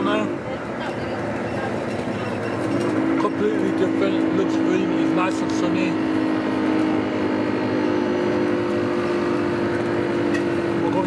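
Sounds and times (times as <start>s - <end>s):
bus road and engine rumble: 0.0s - 11.0s.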